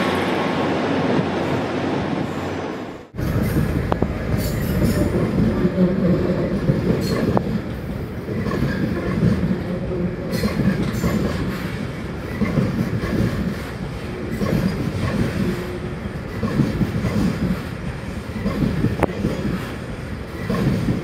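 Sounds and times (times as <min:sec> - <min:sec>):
diesel locomotive rumbling past: 0:00.0 - 0:21.0
train wheels clicking over rail joints: 0:06.5 - 0:21.0.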